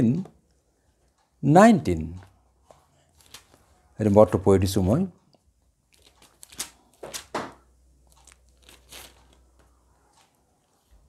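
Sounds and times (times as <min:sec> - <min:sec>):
pages rustling: 0:02.7 - 0:03.8, 0:05.9 - 0:11.0.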